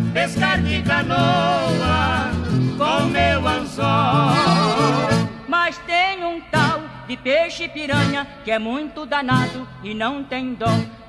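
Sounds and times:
country song: 0.0s - 11.0s.

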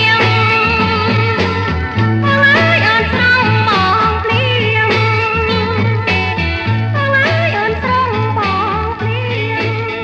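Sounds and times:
person singing: 0.0s - 6.2s, 7.0s - 10.0s
band with repeating bass line: 0.0s - 10.0s.

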